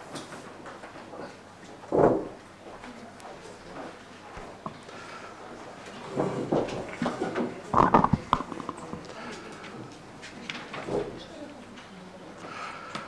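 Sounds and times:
indistinct voices talking low: 7.0 - 10.2.

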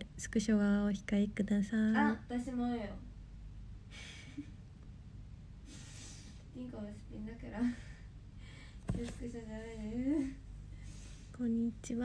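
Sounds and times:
steady low hum: 0.0 - 12.0
woman breathing: 5.6 - 6.5, 7.6 - 8.9, 10.6 - 11.4.

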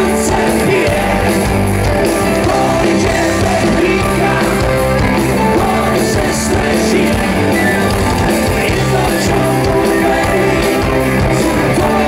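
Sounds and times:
keyboard: 0.0 - 12.0
live rock band playing: 0.0 - 12.0.

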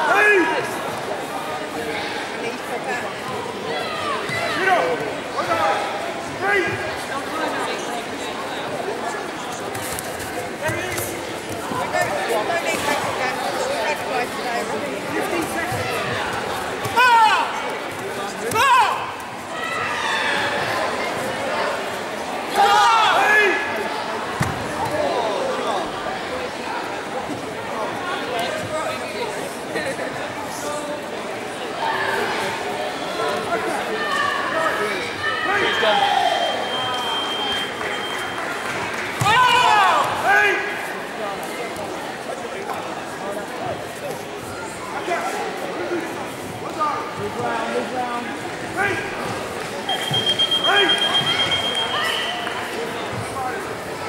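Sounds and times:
voices: 0.0 - 54.0
loud shout: 16.9 - 17.6, 22.5 - 23.7, 39.2 - 40.8.

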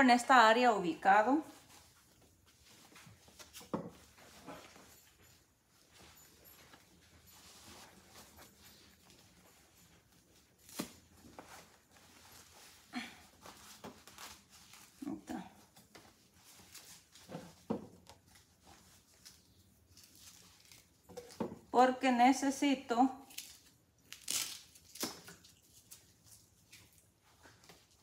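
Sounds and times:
fabric rustling and handling: 1.2 - 21.4.

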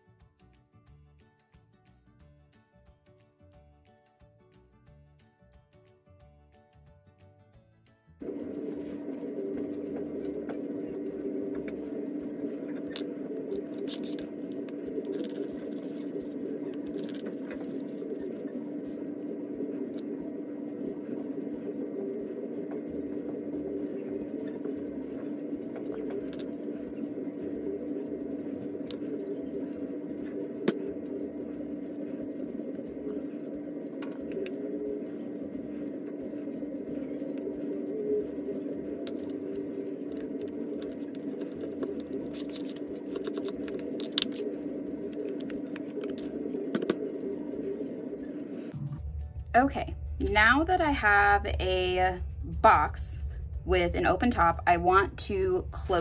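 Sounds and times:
steady low hum: 8.2 - 56.0.

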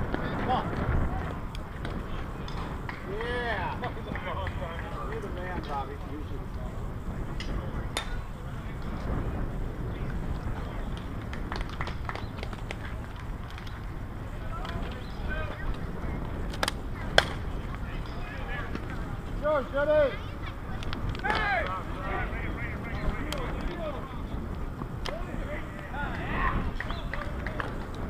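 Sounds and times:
faint distant voices: 0.0 - 28.0
wind on microphone: 0.0 - 28.0.

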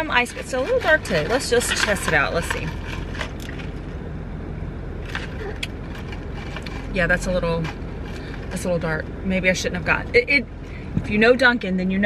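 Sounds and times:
low car cabin hum: 0.0 - 12.0.

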